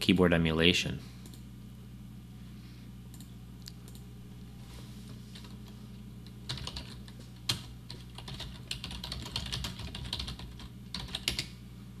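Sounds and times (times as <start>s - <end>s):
typing on computer keyboard: 6.5s - 11.5s.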